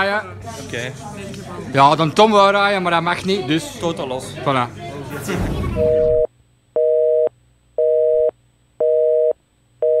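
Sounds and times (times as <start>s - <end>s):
telephone busy signal beeps: 5.8s - 10.0s.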